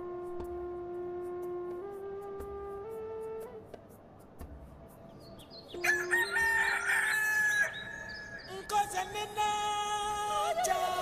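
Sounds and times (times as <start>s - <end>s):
rooster crowing: 5.8s - 8.2s.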